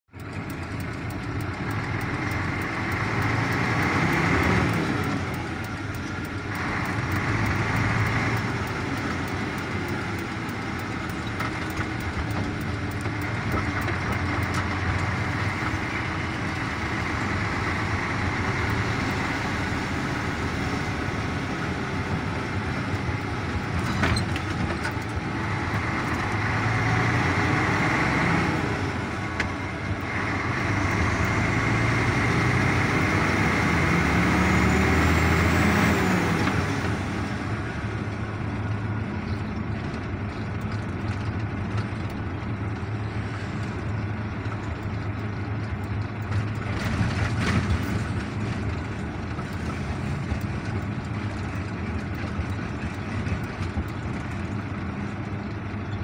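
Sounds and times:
vehicle engine and road noise: 0.0 - 56.0.

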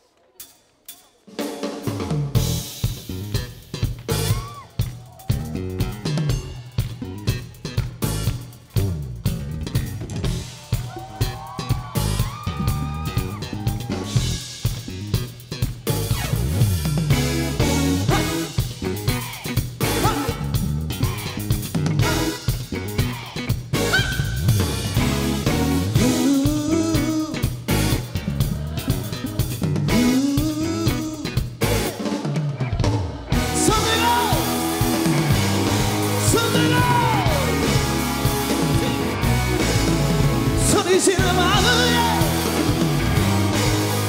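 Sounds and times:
drum kit beat: 0.0 - 44.0
live band playing upbeat song: 0.2 - 44.0
electric bass guitar: 1.9 - 44.0.

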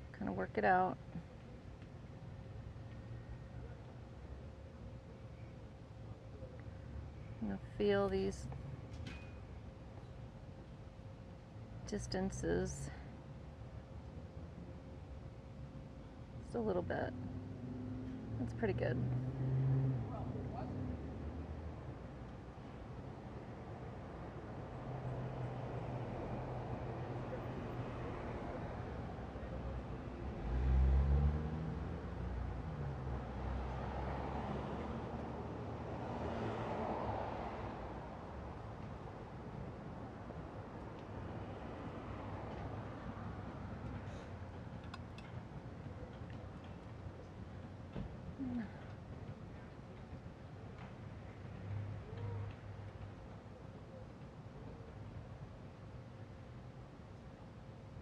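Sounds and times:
cars passing: 16.4 - 50.2, 51.0 - 53.2.

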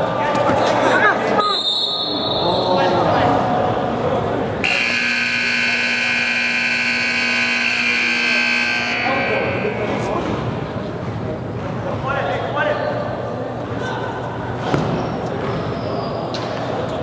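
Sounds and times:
scoreboard buzzer long blast: 4.6 - 10.1.

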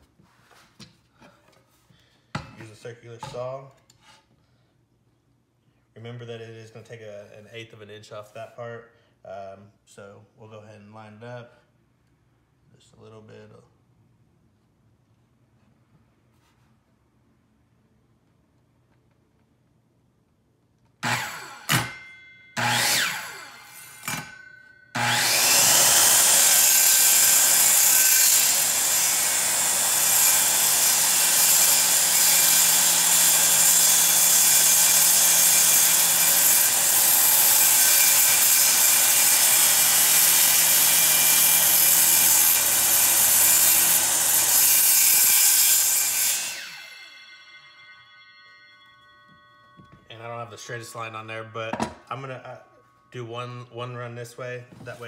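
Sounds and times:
circular saw cutting wood: 21.0 - 47.9.

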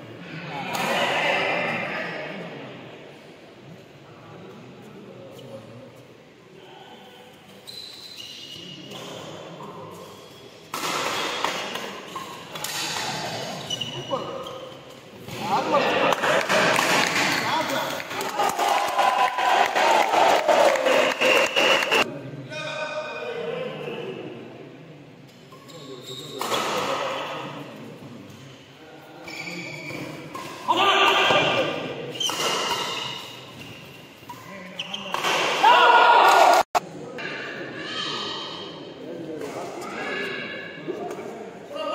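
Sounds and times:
spectators shouting and clapping: 16.1 - 22.1, 35.6 - 36.8
racket hitting shuttlecock: 32.2 - 33.4.

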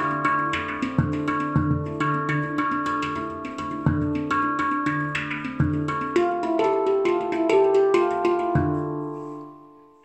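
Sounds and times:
steel handpan played by hand: 0.0 - 10.0.

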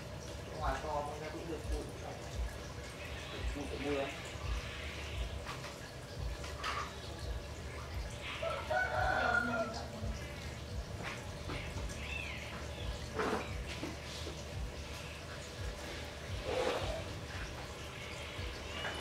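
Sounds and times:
fowl crowing: 8.3 - 9.9.

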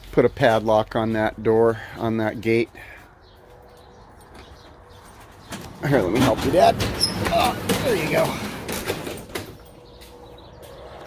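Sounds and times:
metal garage door rattling: 5.4 - 9.8.

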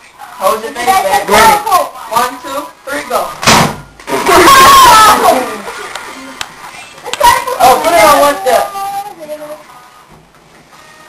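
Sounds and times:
young voices shouting and laughing: 4.1 - 9.1.

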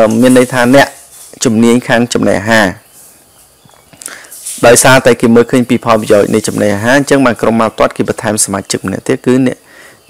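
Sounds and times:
person speaking: 0.0 - 2.9, 4.0 - 9.8.

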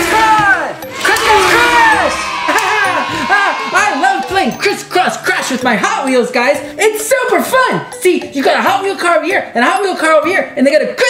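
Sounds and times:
excited voice calling out: 0.2 - 5.8.

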